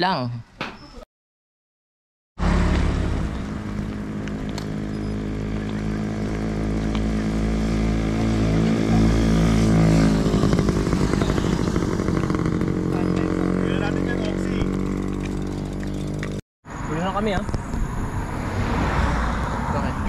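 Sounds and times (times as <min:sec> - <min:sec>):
engine running: 0:02.4 - 0:16.4.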